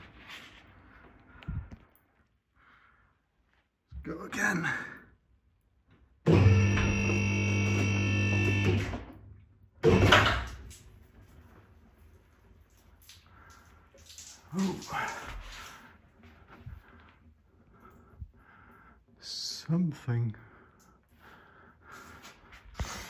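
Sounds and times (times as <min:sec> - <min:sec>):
car lift motor hum: 0:06.3 - 0:10.6.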